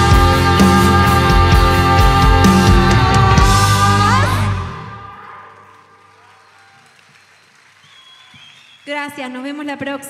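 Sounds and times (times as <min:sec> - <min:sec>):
rock band final chord: 0:00.0 - 0:05.1.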